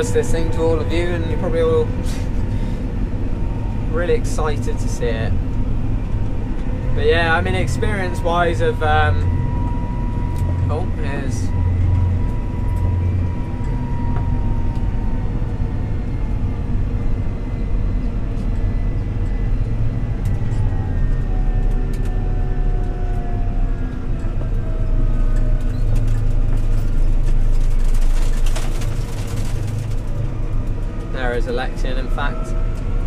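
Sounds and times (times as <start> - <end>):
cars passing close by: 0.0 - 33.0
faint falling whine: 0.0 - 33.0
tractor diesel engine running: 0.0 - 33.0.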